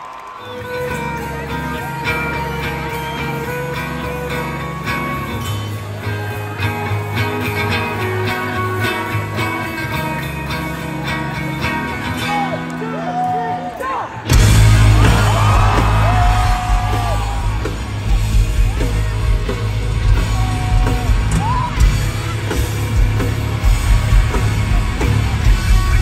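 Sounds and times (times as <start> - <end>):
rock band playing live: 0.2 - 26.0.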